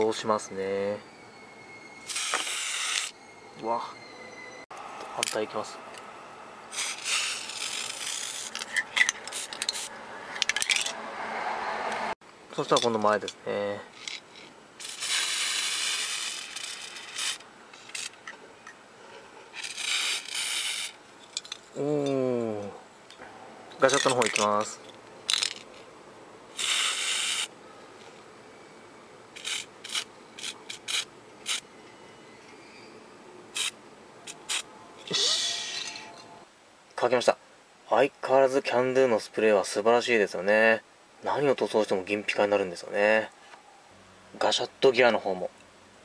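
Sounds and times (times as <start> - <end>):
spray paint can hissing: 2.1 - 3.1, 6.7 - 8.6, 14.8 - 17.4, 19.6 - 21.0, 26.6 - 27.5, 29.4 - 31.6, 33.6 - 34.6
plastic toy parts clicking: 23.9 - 24.7, 25.3 - 25.8
aerosol can spraying: 26.6 - 27.5.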